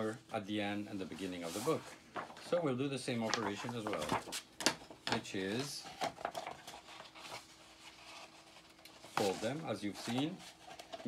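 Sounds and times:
paper rustling and sliding: 0:00.7 - 0:04.6, 0:05.4 - 0:11.0
paper crackles: 0:01.0 - 0:04.5.

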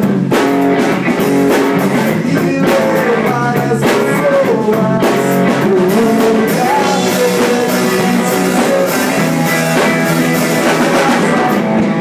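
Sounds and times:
drum kit with cymbal hits: 0:00.0 - 0:12.0
electric bass: 0:00.0 - 0:12.0
electric guitar: 0:00.0 - 0:12.0.

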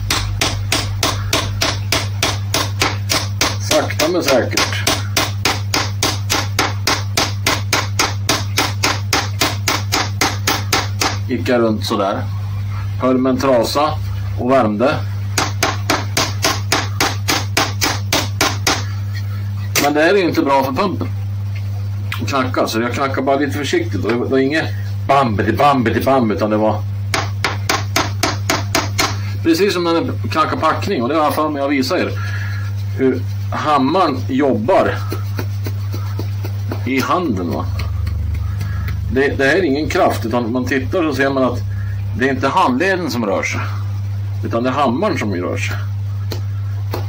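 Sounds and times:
steady low hum: 0:00.0 - 0:47.0
small hammer tapping metal: 0:00.1 - 0:11.2.

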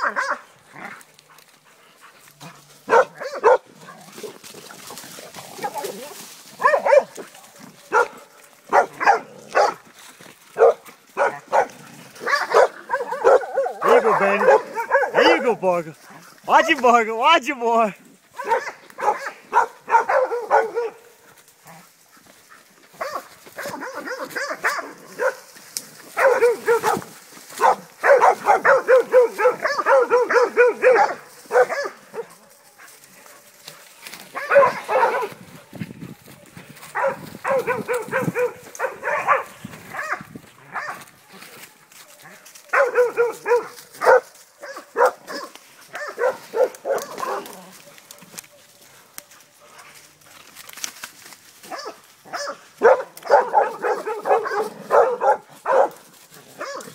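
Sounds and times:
dogs barking: 0:00.0 - 0:00.9, 0:01.6 - 0:04.4, 0:05.4 - 0:09.9, 0:10.5 - 0:15.6, 0:18.3 - 0:33.6, 0:34.2 - 0:35.5, 0:36.8 - 0:49.0, 0:51.6 - 0:56.9.

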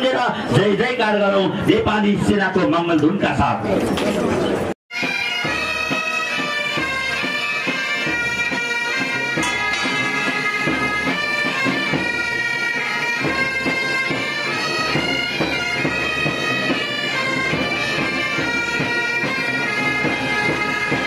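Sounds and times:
bagpipes playing melody: 0:04.9 - 0:21.0
drum beating: 0:06.6 - 0:21.0.

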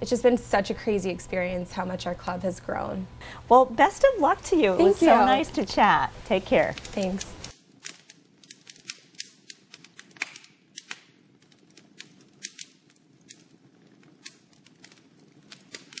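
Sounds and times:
crackling fire: 0:00.0 - 0:16.0.

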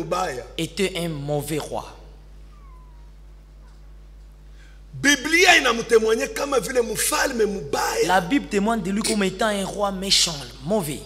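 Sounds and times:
electrical hum: 0:00.0 - 0:11.0
faint falling squeak: 0:02.5 - 0:03.8.

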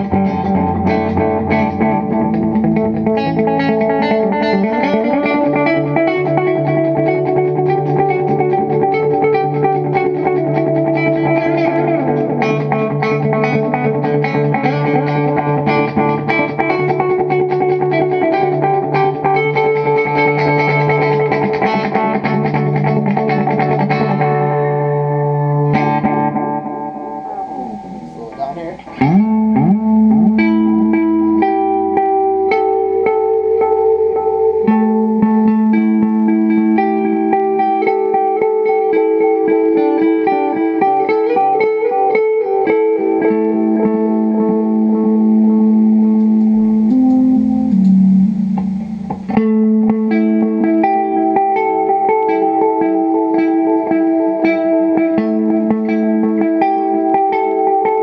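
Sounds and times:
electric guitar with delay echoes: 0:00.0 - 0:58.0.

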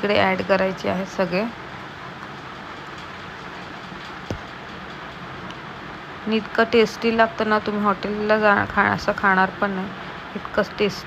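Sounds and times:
kitchen hum and hiss: 0:00.0 - 0:11.0.

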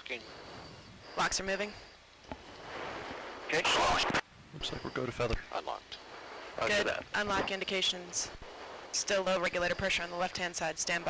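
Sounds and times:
loud burst of static: 0:00.0 - 0:11.0
radio channel hiss: 0:00.0 - 0:11.0.

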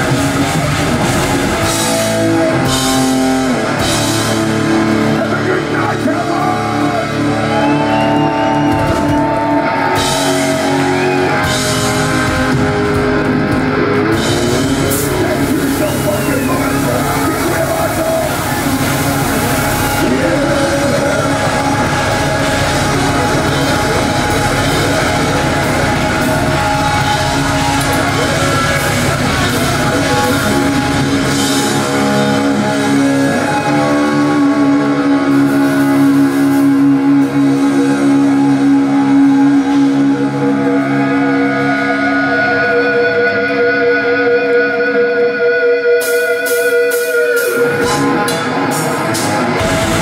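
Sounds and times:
death metal band playing live: 0:00.0 - 0:50.0
distorted electric guitars: 0:00.0 - 0:50.0.

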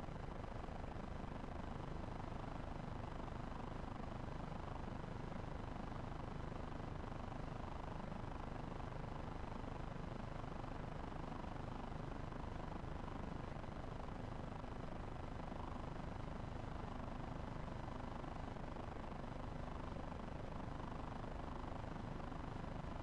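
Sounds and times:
low rumbling outdoor background noise: 0:00.0 - 0:23.0.

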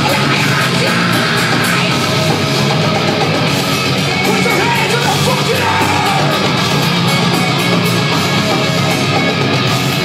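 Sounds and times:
person yelling: 0:00.0 - 0:02.0, 0:04.3 - 0:06.6
heavy metal band playing live: 0:00.0 - 0:10.0.

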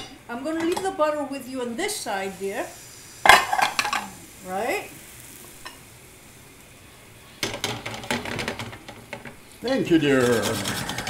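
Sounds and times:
butter sizzling in a pan: 0:00.0 - 0:11.0
brush scraping strokes: 0:10.0 - 0:11.0.

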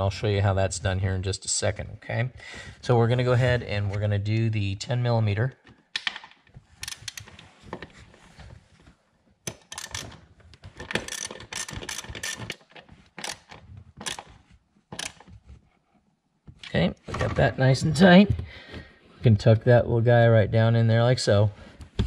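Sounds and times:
ratchet wrench clicking: 0:06.8 - 0:07.4, 0:09.5 - 0:10.1, 0:11.0 - 0:12.6, 0:13.2 - 0:14.3, 0:15.0 - 0:15.2.

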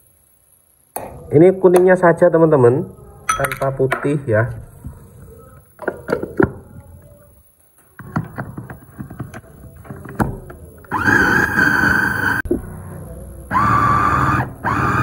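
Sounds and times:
chopper motor whining: 0:10.9 - 0:12.4, 0:13.4 - 0:15.0.

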